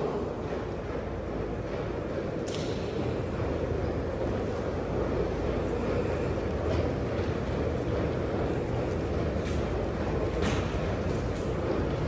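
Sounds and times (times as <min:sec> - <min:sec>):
metro platform background noise: 0:00.0 - 0:12.0.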